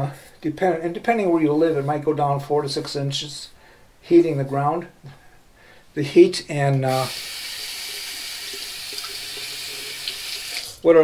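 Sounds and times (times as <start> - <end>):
water running from sink tap: 6.9 - 10.9.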